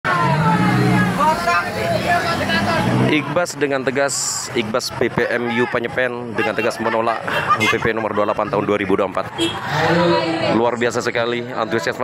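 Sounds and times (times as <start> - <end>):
people's voices: 0.1 - 12.0.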